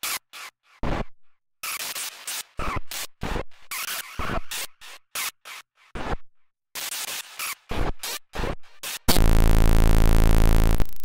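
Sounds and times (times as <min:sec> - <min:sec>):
glitchy stuttering drum beat: 0:09.1 - 0:11.0.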